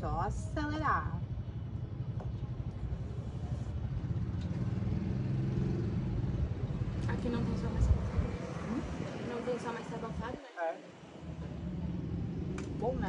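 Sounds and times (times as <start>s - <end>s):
vehicle engine rumble passing: 1.2s - 13.0s.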